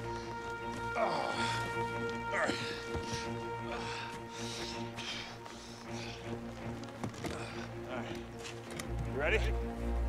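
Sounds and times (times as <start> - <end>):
film score sustained tones: 0.0 - 10.0.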